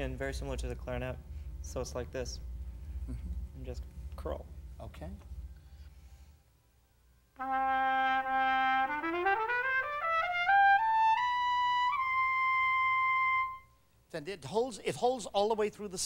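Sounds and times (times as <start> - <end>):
trumpet playing ascending scale: 7.4 - 13.8.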